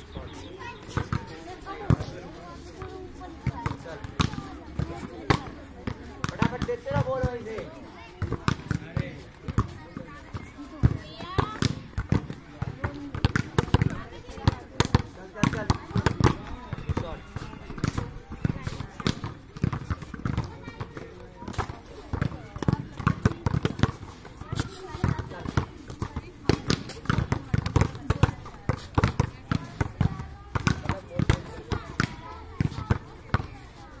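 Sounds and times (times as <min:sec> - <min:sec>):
players' voices: 0:00.0 - 0:34.0
volleyballs slapping and thudding: 0:02.8 - 0:33.6.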